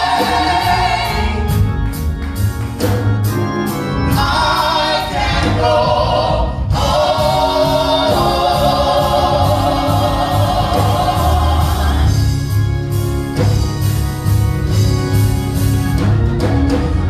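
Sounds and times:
vocal group singing in harmony: 0.0 - 1.7, 4.1 - 12.6.

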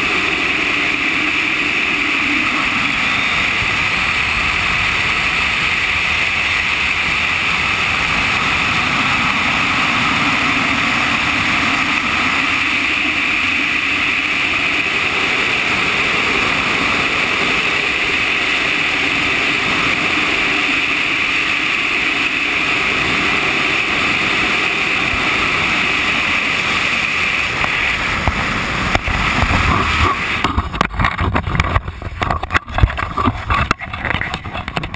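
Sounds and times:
airflow rushing over camera: 0.0 - 34.9.

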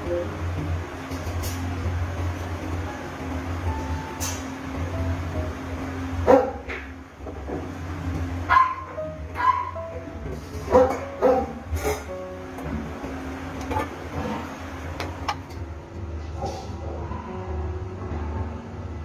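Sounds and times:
soft background music: 0.0 - 19.0
dog barking: 6.3 - 6.6, 8.5 - 9.8, 10.7 - 11.6.

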